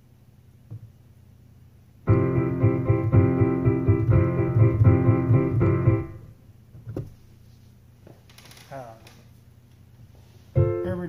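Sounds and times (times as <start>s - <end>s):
digital piano chords: 2.1s - 6.4s, 10.6s - 11.0s.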